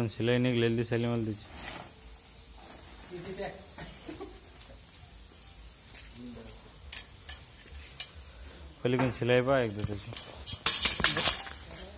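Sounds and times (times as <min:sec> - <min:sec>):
plastic sack rustling: 0:01.3 - 0:03.8.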